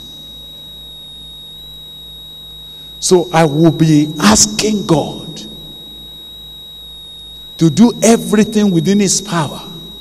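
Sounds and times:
faint low hum: 0.0 - 10.0
high-pitched electrical whine: 0.0 - 10.0.

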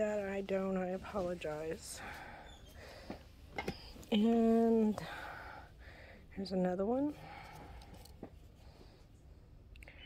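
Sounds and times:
low background hiss: 0.0 - 10.0.

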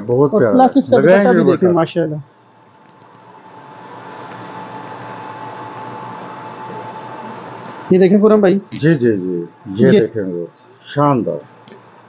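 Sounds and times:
mechanical hum and hiss: 0.0 - 12.0
thin steady whine: 0.0 - 12.0.

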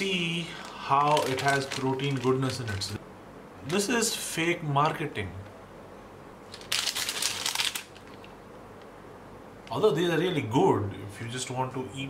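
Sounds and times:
snack packet crinkling: 0.0 - 3.0, 6.5 - 8.4.

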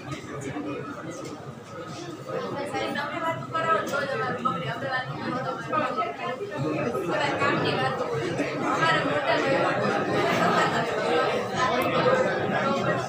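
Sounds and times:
students chattering: 0.0 - 13.0.

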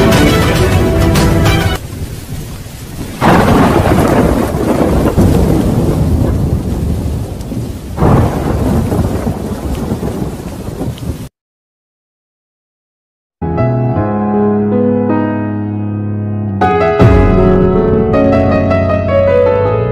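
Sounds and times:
heavy rain: 0.0 - 11.3
thunder rolling: 1.8 - 11.3, 17.0 - 19.3.

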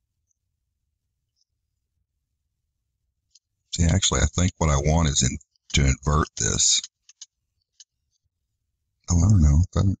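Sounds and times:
faint clicks: 5.4 - 8.3.

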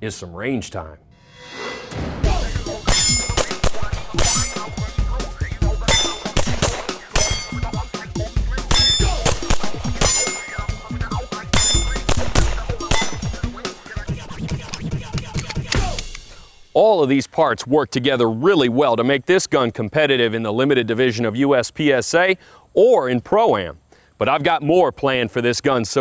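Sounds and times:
background music with a beat: 1.9 - 16.6
steel plate targets ringing: 2.2 - 13.5
rapid pistol shots: 2.8 - 4.9, 5.8 - 7.9, 8.6 - 13.8.

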